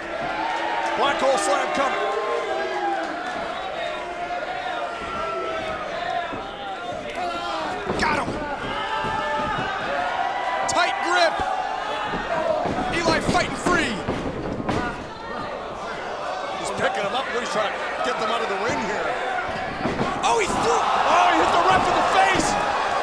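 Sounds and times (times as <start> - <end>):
crowd shouting and yelling: 0.0 - 23.0.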